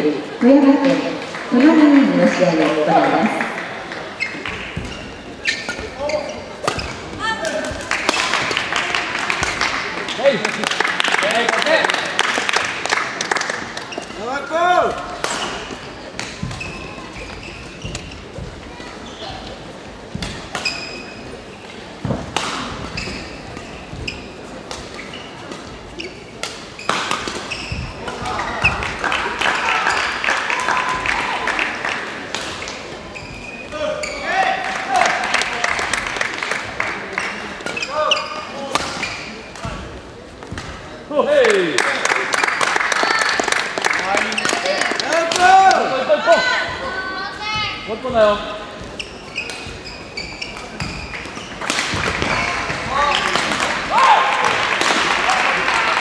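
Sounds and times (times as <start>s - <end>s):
echoing voices and shouts: 0.0s - 4.1s, 42.9s - 48.8s, 52.1s - 56.0s
shoes squeaking on court floor: 1.6s - 8.6s, 13.6s - 29.3s, 32.2s - 36.0s, 37.1s - 41.0s, 44.0s - 54.1s.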